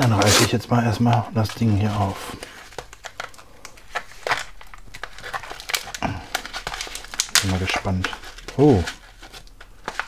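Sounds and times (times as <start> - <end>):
paper pouch tearing and crinkling: 0.0 - 0.6, 1.4 - 10.0.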